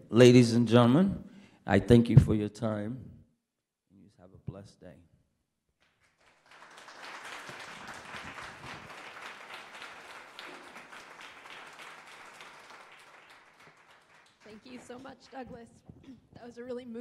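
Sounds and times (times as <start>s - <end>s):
audience applauding: 6.0s - 15.4s.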